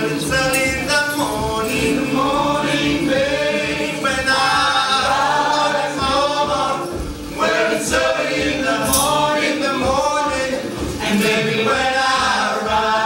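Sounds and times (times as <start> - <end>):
group singing in harmony: 0.0 - 13.0
steady low beat: 0.0 - 13.0.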